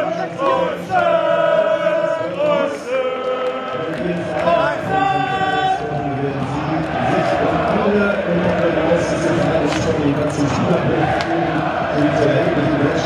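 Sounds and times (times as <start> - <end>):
crowd singing a chant: 0.0 - 13.0.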